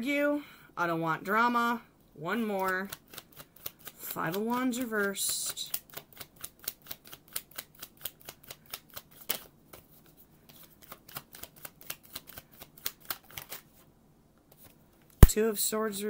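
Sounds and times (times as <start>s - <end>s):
cards being shuffled: 2.6s - 13.8s.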